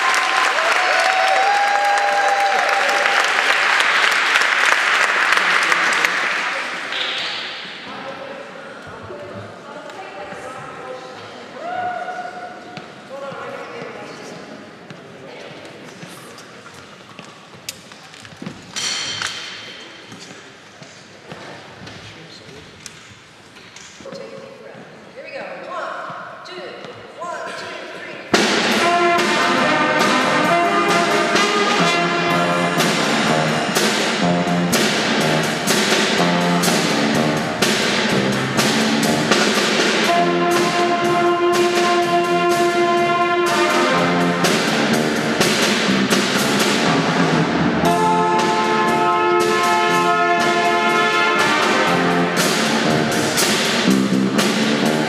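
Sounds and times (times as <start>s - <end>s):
jazz band playing: 28.3s - 55.0s
short rising run of notes: 28.5s - 55.0s.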